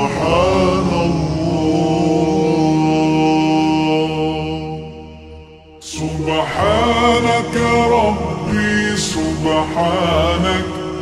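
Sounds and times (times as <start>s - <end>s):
reverberant a cappella singing: 0.0s - 11.0s.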